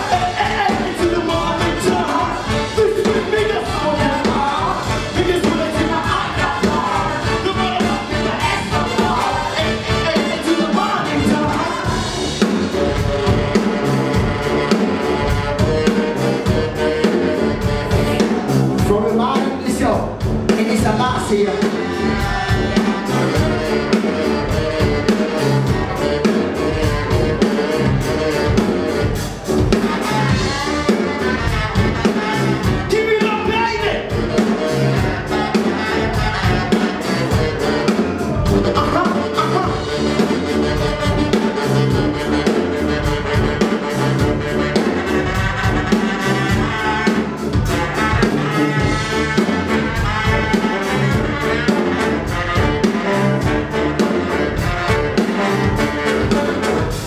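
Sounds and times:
brass band playing: 0.0 - 57.0
drum kit beat: 0.0 - 57.0.

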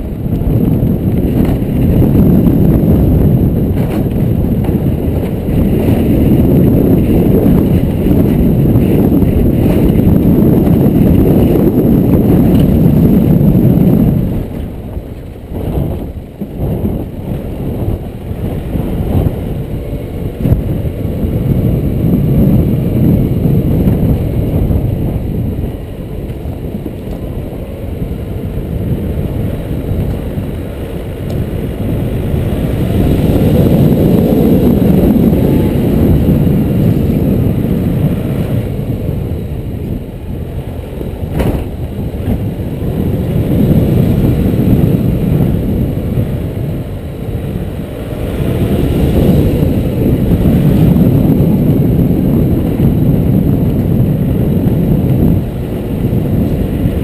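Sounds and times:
vehicle engine rumble: 0.0 - 57.0
wind on microphone: 0.0 - 57.0.

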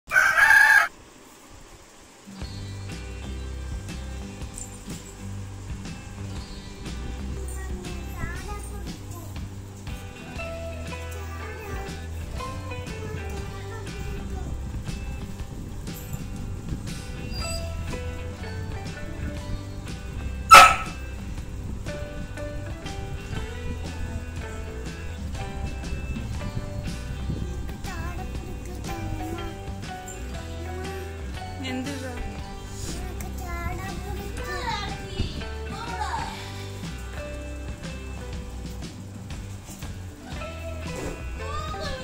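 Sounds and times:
rooster crowing: 0.1 - 1.0
dog barking: 20.5 - 21.0.

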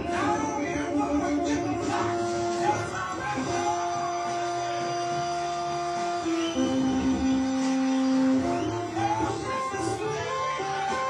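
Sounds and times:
blues harmonica long note: 0.0 - 11.0.

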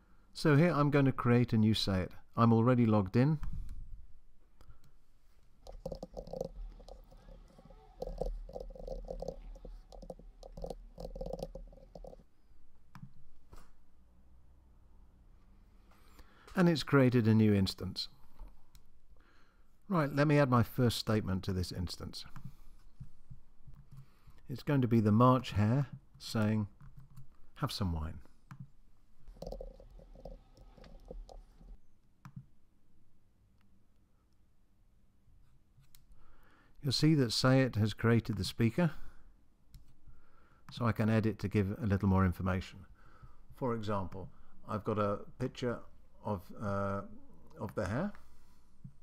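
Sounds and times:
computer keyboard typing: 5.7 - 12.2, 29.4 - 31.7.

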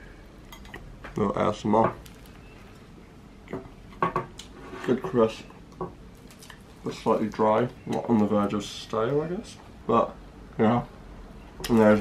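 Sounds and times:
croissant crust crunching: 2.0 - 2.9, 6.1 - 7.6.

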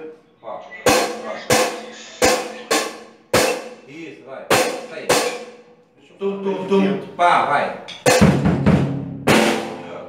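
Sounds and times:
drum kit hits: 0.9 - 3.9, 4.5 - 5.7, 7.9 - 10.0.

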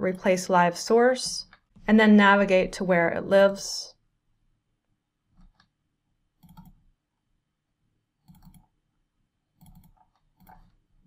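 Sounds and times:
computer mouse double-clicks: 6.4 - 6.8, 8.2 - 8.7, 9.6 - 10.8.

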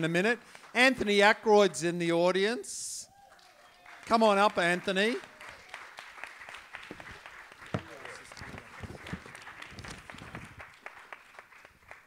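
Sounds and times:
audience applauding: 3.1 - 12.0.

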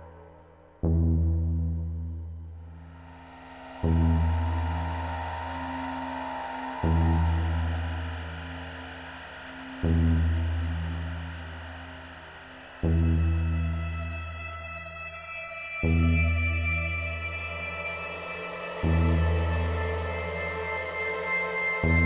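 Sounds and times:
held synthesizer pad: 0.0 - 22.0
deep gong-like bass note: 0.9 - 11.9.

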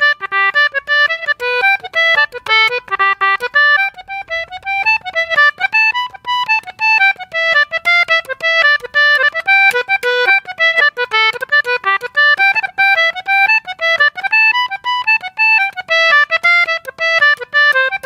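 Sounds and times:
concertina playing a jig: 0.0 - 18.0.

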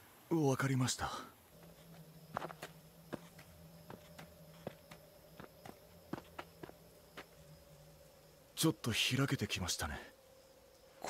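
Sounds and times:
faint steady hum: 0.0 - 11.0
faint footsteps: 1.5 - 8.2.

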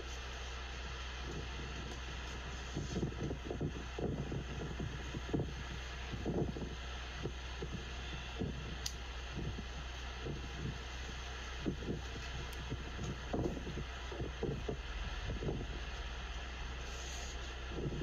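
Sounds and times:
low city hum: 0.0 - 18.0
wind buffeting microphone: 1.2 - 16.8, 17.6 - 18.0.

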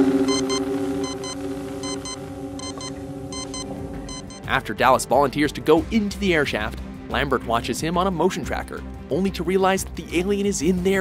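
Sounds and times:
steady low hum: 0.0 - 4.6
short double beeps: 0.3 - 4.5.

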